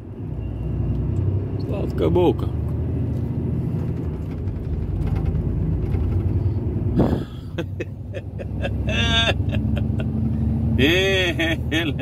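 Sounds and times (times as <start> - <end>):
road noise: 0.0 - 12.0
truck engine rumble: 0.0 - 12.0.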